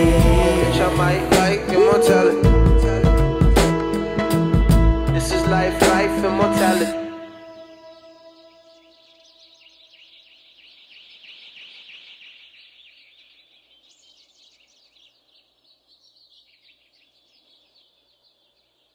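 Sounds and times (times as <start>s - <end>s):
bird chirping and twittering: 7.3s - 18.9s.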